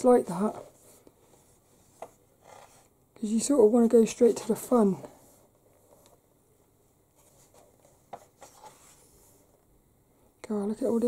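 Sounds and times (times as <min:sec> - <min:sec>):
soft brushing strokes: 0:00.0 - 0:03.0, 0:04.0 - 0:06.2, 0:06.8 - 0:09.6
book pages rustling: 0:00.3 - 0:02.9, 0:07.1 - 0:09.5.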